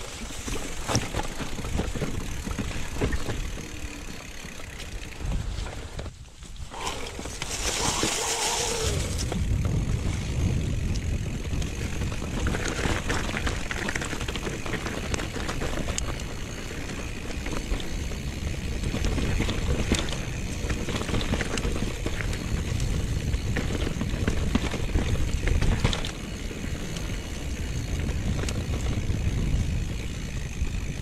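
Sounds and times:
bike clicks and rattles: 0.0s - 31.0s
low rumble of tyres and air: 0.0s - 31.0s.

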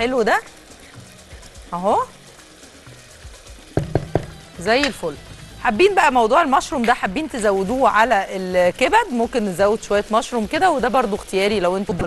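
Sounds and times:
sauce simmering: 0.4s - 4.6s
sharp knocks: 3.8s - 4.4s.

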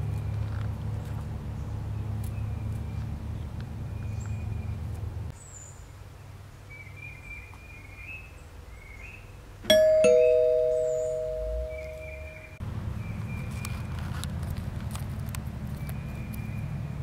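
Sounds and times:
two-tone doorbell chime: 9.7s - 12.6s.

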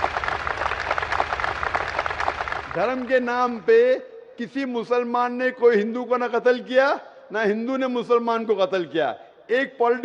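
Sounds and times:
large audience applauding: 0.0s - 3.3s.

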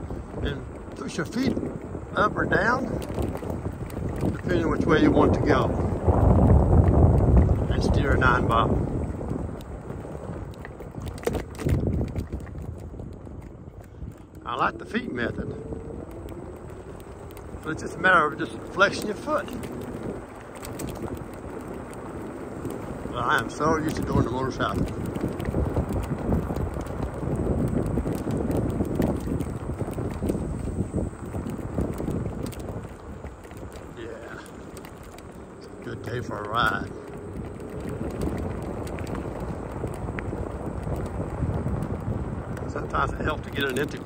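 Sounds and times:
scooter tyres rolling on asphalt: 0.0s - 44.0s
wind rumbling on microphone: 0.0s - 44.0s
light ticks: 9.5s - 9.7s, 10.3s - 30.7s, 31.3s - 44.0s.

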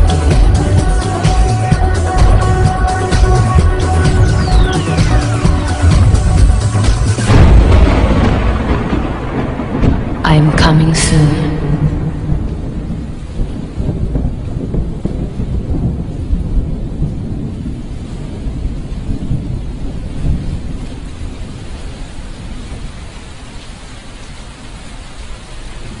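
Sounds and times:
low rumbling noise: 0.0s - 23.2s.

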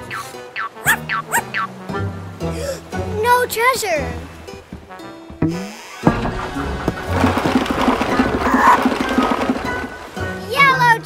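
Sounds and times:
background music: 0.0s - 11.0s
cartoon barrel rolling rumble: 5.4s - 11.0s.

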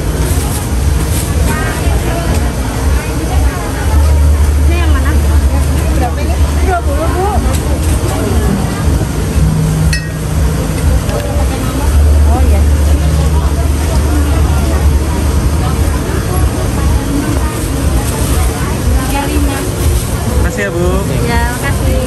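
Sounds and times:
indistinct voices chattering: 0.0s - 22.0s
steady low rumble: 0.0s - 22.0s.

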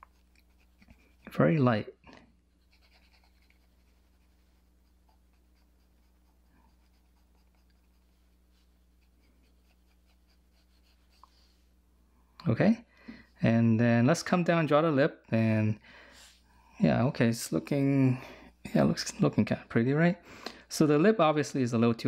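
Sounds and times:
pencil scratching on paper: 0.0s - 1.4s, 2.6s - 11.6s.

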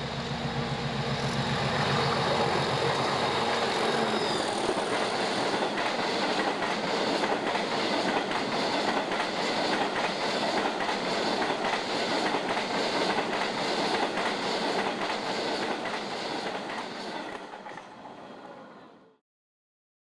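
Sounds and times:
freight train wheels rumbling: 0.0s - 18.2s.

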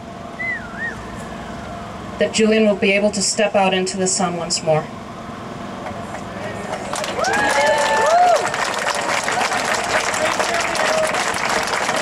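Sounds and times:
high wavering whistling tone: 0.4s - 1.8s.

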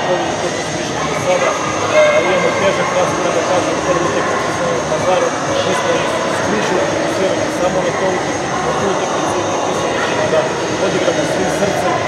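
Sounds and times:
man speaking: 0.0s - 12.0s
steady background rush: 0.0s - 12.0s.

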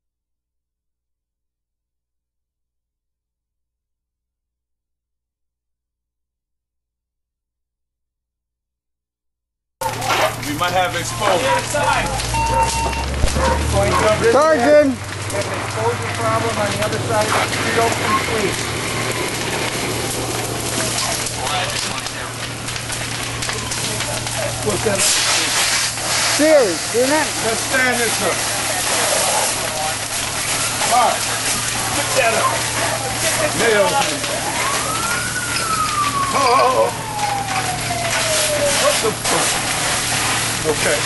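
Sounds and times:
fire crackling and hissing: 9.8s - 41.0s
steady rushing hiss: 24.6s - 30.2s.

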